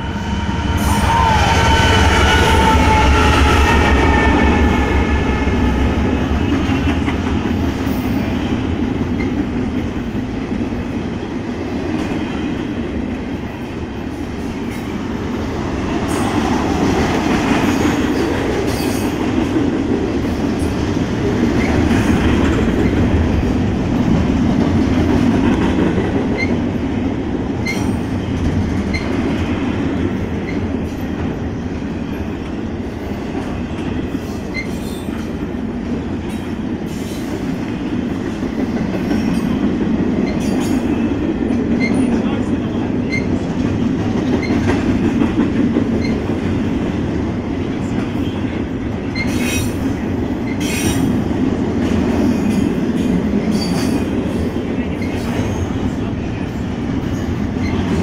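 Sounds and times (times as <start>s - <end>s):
train wheels rumbling on rails: 0.0s - 58.0s.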